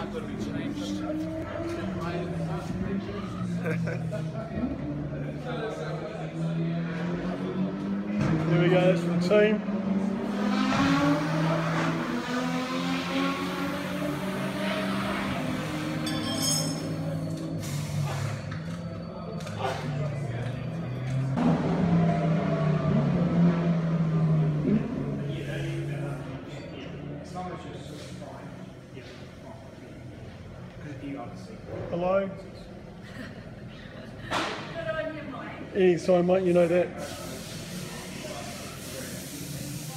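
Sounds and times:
racing car engines running: 0.0s - 39.9s.

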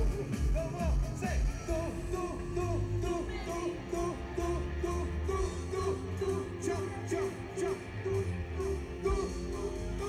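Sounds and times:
live concert music: 0.0s - 10.0s.

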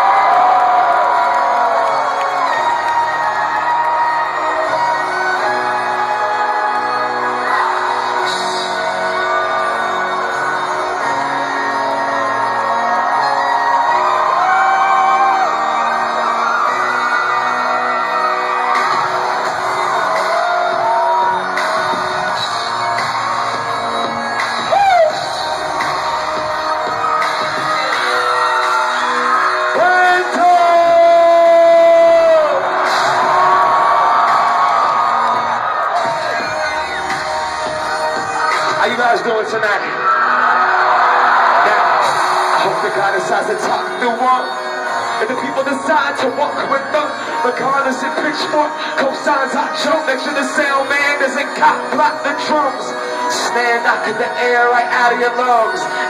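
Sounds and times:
crowd cheering and shouting: 0.0s - 56.0s
live concert music over pa: 0.0s - 56.0s.

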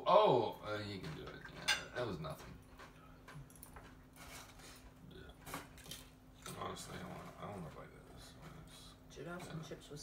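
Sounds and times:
table noises handling food: 0.9s - 8.6s.

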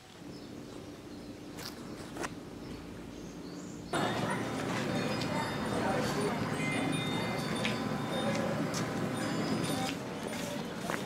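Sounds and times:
indistinct voices of passers-by: 4.0s - 11.0s.

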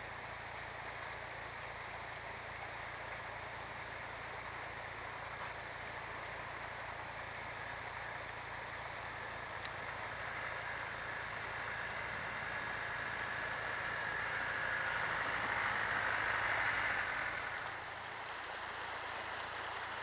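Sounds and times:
low steady engine: 0.0s - 20.0s.

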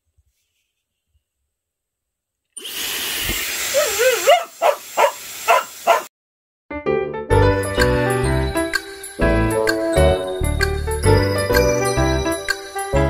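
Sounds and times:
hair dryer blowing: 2.6s - 4.3s
dog barking: 3.7s - 6.1s
dog whining: 3.7s - 6.1s
music with jingling bells: 7.4s - 13.0s.

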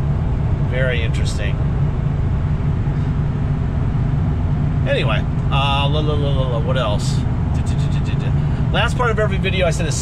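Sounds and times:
diesel engine cruising: 0.0s - 10.0s
road and tyre noise: 0.0s - 10.0s.

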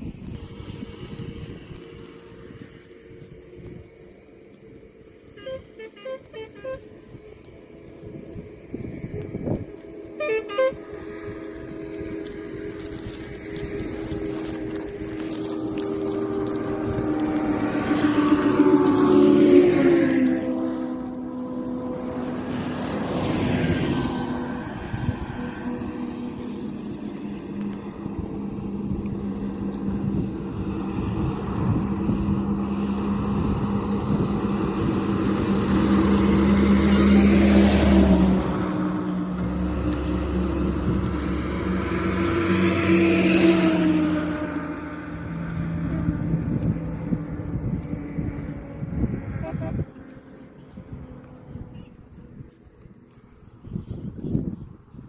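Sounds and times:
engine running nearby: 0.0s - 55.0s
vehicles passing by: 0.0s - 55.0s.

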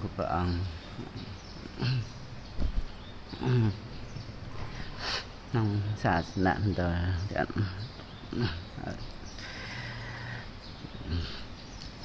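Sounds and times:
man making low vocal sounds: 0.0s - 2.2s, 3.3s - 4.0s, 5.5s - 11.6s.

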